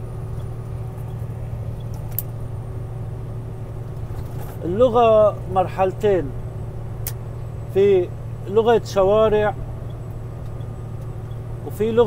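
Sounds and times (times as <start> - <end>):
vehicle engine and road drone: 0.0 - 12.0.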